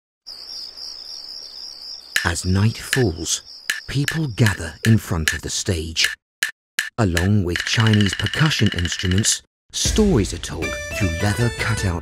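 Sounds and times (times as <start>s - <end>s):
crickets chirping: 0.3s - 5.0s.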